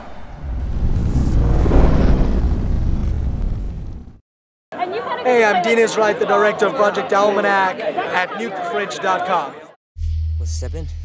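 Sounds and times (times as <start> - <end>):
deep rumble sound effect: 0.0 - 4.2.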